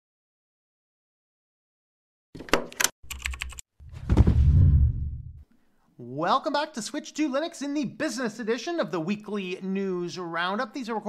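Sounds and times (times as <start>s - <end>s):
deep loud sound: 3.9s - 5.4s.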